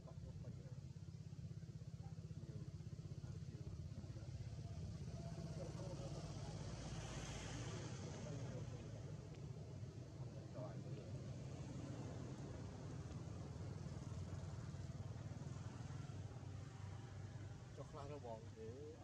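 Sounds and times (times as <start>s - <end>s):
faint vehicle engine rumble: 0.0s - 19.0s.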